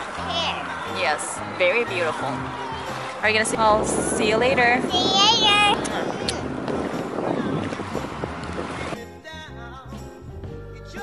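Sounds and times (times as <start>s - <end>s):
child saying yeah: 0.2s - 0.6s, 4.8s - 6.3s
wind buffeting microphone: 1.4s - 9.0s.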